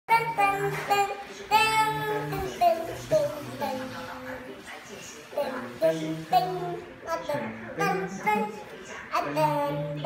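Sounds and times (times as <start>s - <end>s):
child singing wordless melody: 0.1s - 4.5s, 5.3s - 10.0s.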